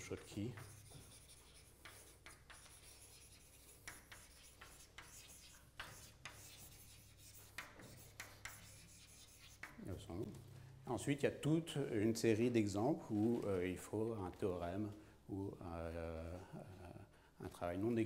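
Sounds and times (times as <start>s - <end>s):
chalk scratching on blackboard: 0.0s - 9.8s.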